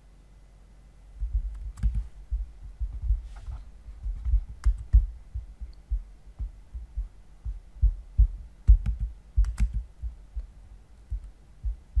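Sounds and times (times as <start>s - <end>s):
low handling thumps on microphone: 1.2s - 10.5s
sharp computer clicks: 1.5s - 2.1s, 4.2s - 5.1s, 8.6s - 9.9s.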